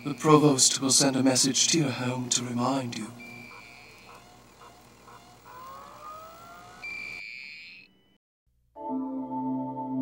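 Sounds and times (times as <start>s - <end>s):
steady high-pitched tone: 0.0s - 8.2s
slowly rising electronic tones: 3.1s - 8.2s.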